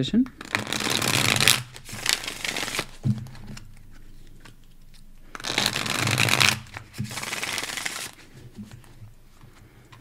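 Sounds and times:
deck of cards shuffling: 0.3 - 10.0.

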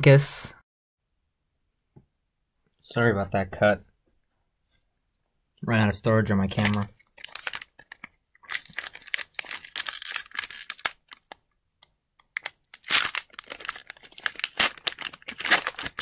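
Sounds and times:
foil wrapper crinkling and tearing: 6.5 - 11.4, 12.2 - 16.0.

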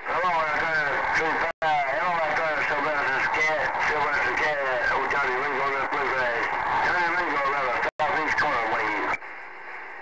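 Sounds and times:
voice over radio speaker: 0.0 - 9.2.

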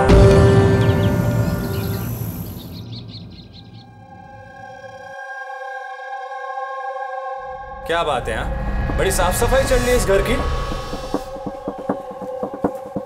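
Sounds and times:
high chirps: 0.0 - 5.1
dense background music: 0.0 - 5.5, 6.5 - 13.0
sustained synthesized chord: 0.0 - 7.9.

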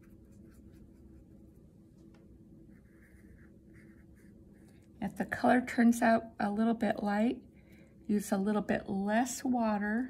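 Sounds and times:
scratchy brush strokes on paper: 0.0 - 5.2.

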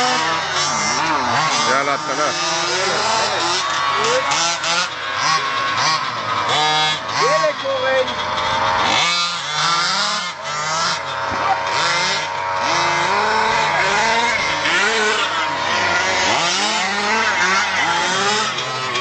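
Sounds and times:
two-stroke engines revving: 0.0 - 19.0.

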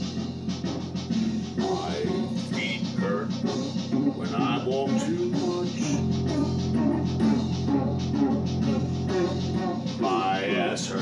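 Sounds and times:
person singing: 1.4 - 11.0.

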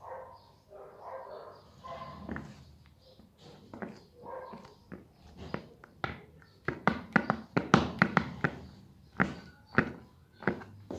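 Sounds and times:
shoe studs tapping on tile floor: 5.9 - 8.5.

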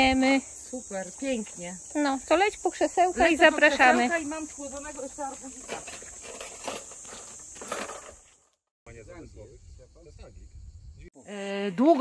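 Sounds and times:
high-pitched insect drone: 0.0 - 8.2.

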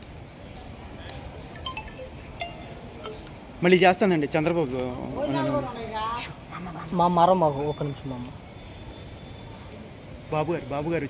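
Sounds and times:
outdoor background noise: 0.0 - 11.0
brief high tones: 1.6 - 3.4.

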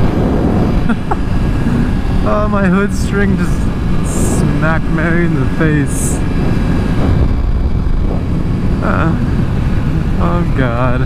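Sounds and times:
motorcycle engine running: 0.0 - 11.0
wind noise on microphone: 0.0 - 11.0.

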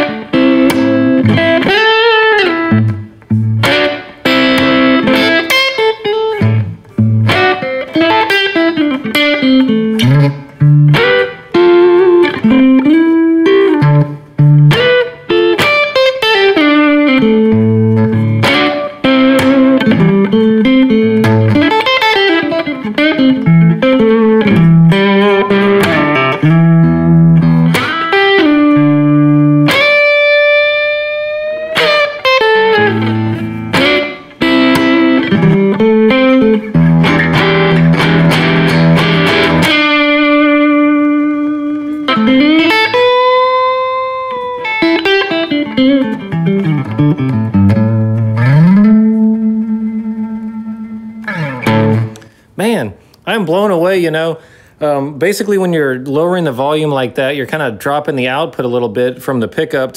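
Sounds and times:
electric guitar single-note phrases: 0.0 - 52.4.

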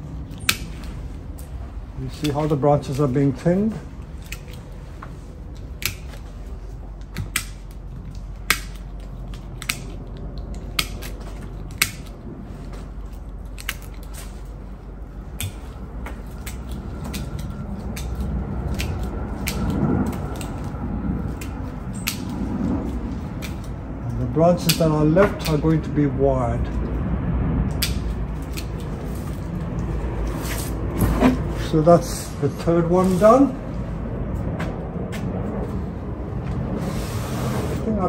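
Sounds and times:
scissors snipping twigs: 0.2 - 3.2, 4.0 - 12.2, 12.9 - 25.9, 27.7 - 30.8.

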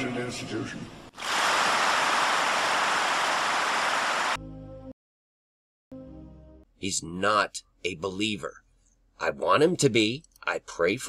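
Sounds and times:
audience applauding: 1.2 - 4.4
held musical chord: 5.9 - 6.7.

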